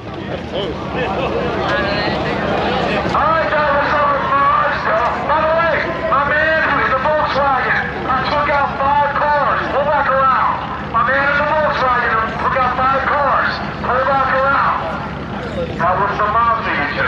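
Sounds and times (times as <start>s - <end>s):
indistinct talking: 0.0s - 17.0s
steady low rumble: 0.0s - 17.0s.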